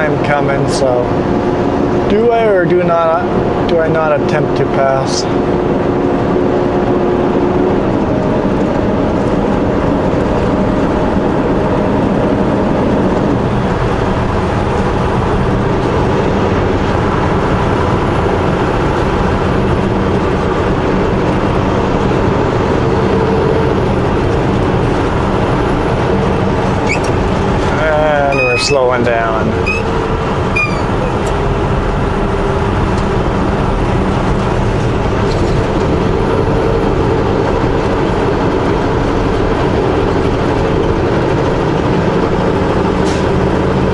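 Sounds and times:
road and tyre noise: 0.0s - 43.9s
truck engine droning: 0.0s - 43.9s.

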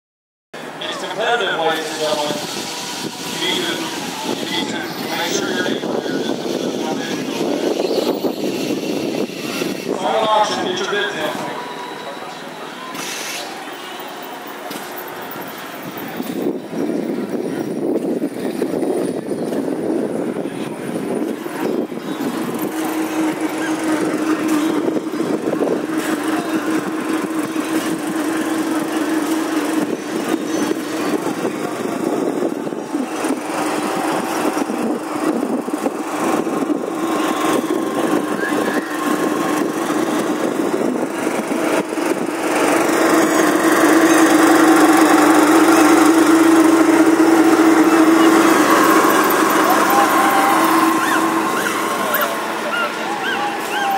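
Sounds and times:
constant background noise: 0.6s - 53.9s
steady engine drone: 0.6s - 53.9s.

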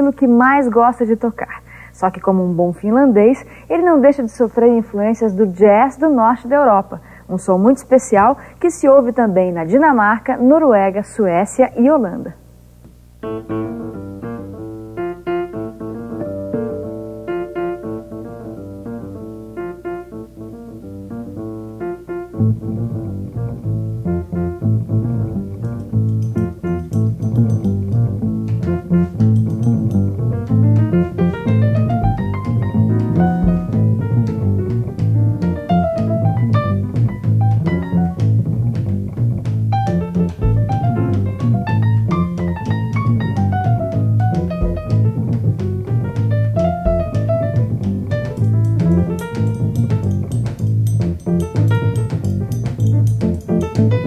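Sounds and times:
electric guitar: 12.9s - 54.0s
acoustic piano: 13.2s - 54.0s
plucked upright bass: 13.3s - 54.0s
drum kit: 25.3s - 54.0s.

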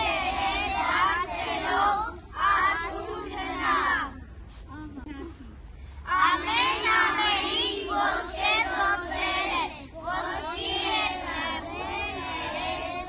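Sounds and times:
children singing together: 0.0s - 4.2s, 6.1s - 13.0s.

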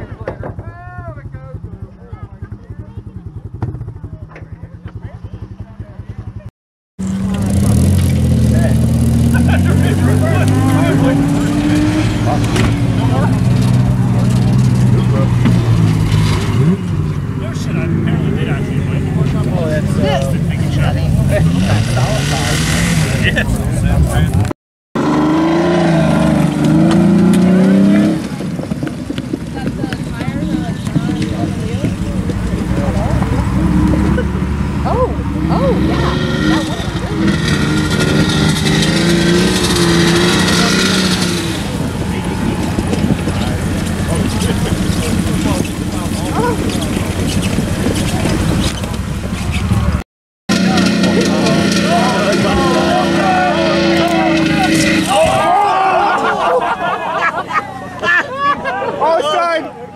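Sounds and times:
car engines revving: 0.0s - 59.9s
people's voices: 0.0s - 59.9s.

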